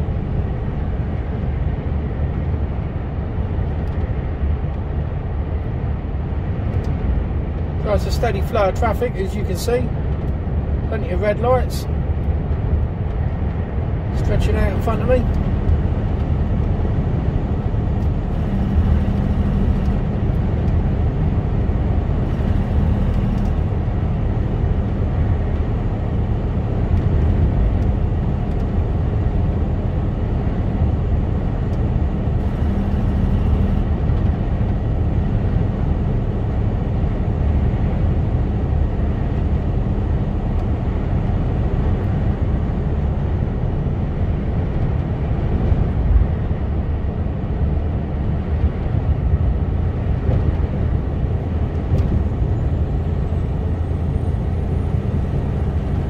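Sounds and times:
diesel engine drone: 0.0s - 56.0s
road noise: 0.0s - 56.0s.

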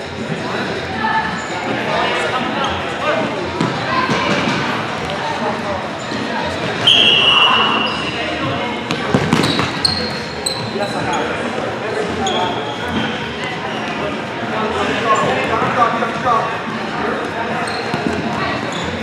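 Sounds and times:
sneaker squeaks: 6.0s - 14.0s, 15.0s - 15.5s, 17.5s - 19.0s
referee's whistle blast: 6.8s - 8.1s.

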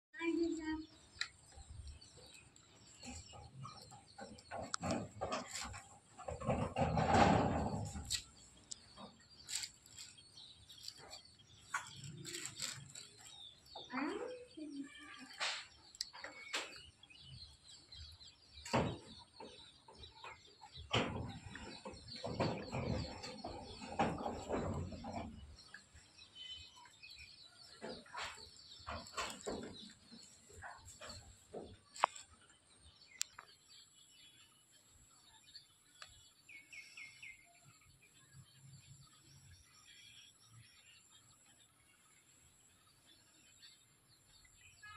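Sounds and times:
birds chirping: 0.2s - 44.9s
sharp clicks and knocks: 2.6s - 9.8s
rustling: 9.4s - 13.5s.

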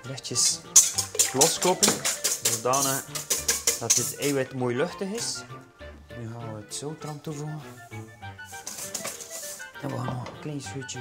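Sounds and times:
background music: 0.0s - 11.0s
whisk rattling in metal bowl: 0.4s - 4.5s, 8.5s - 9.8s.

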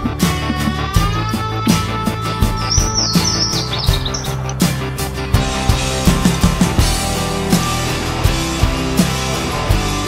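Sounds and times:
high chirps: 0.0s - 5.0s
music with steady beat: 0.0s - 10.0s.

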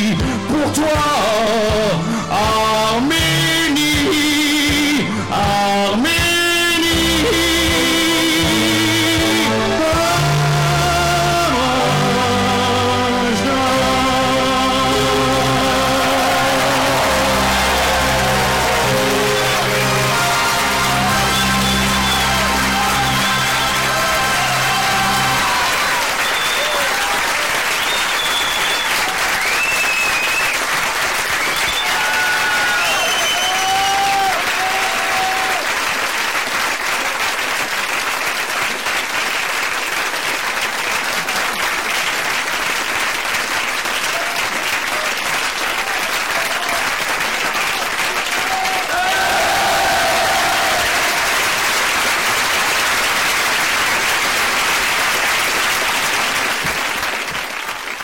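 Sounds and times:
audience applauding: 7.0s - 58.0s.

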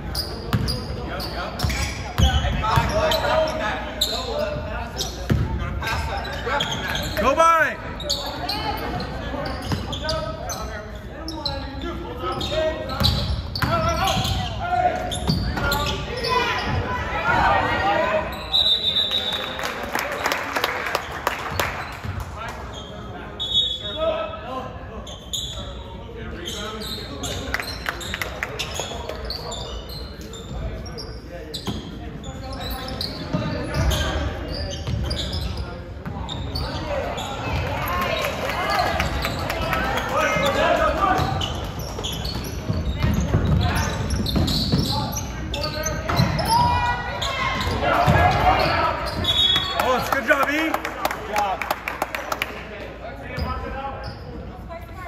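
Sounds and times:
shouts and chatter: 15.7s - 19.7s, 44.8s - 51.6s.

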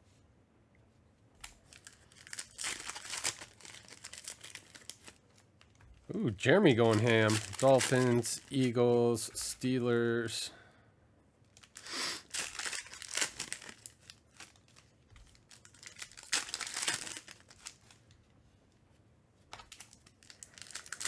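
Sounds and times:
foil wrapper tearing: 1.4s - 5.8s, 6.7s - 8.8s, 11.6s - 18.0s, 19.7s - 21.0s
foil wrapper crinkling: 1.4s - 9.0s, 11.5s - 18.0s, 19.5s - 21.0s.

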